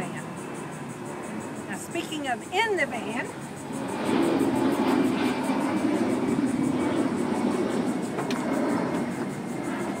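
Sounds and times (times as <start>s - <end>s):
low rumble of vehicle noise: 0.0s - 10.0s.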